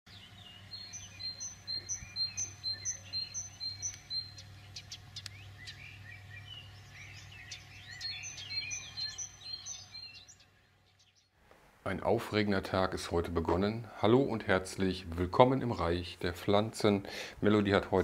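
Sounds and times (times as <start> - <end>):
birds singing and chirping: 0.1 - 11.4, 12.7 - 18.0
faint low hum: 0.1 - 18.0
short high bird chirp: 0.9 - 5.8.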